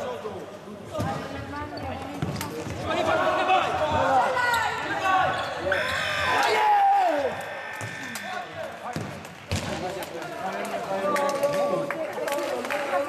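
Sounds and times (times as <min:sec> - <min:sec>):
players shouting: 0:02.9 - 0:08.8.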